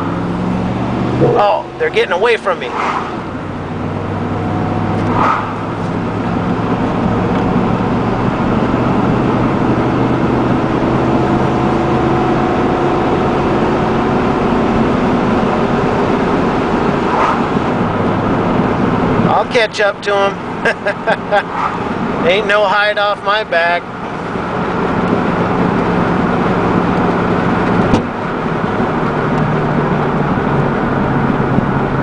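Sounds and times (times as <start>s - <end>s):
road noise: 0.0s - 32.0s
truck engine accelerating: 0.0s - 32.0s.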